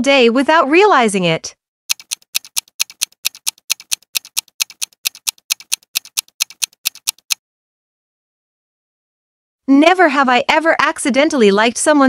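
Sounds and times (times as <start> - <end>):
clock ticking: 1.9 - 7.4.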